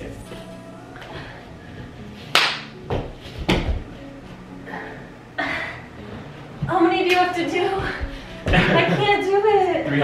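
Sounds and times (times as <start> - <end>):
hand slaps of high fives: 2.3 - 2.7.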